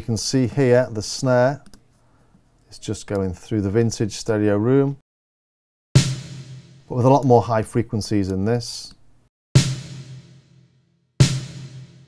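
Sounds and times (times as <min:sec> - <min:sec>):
snare drum hit with reverb: 0:06.0 - 0:06.9, 0:09.6 - 0:12.0.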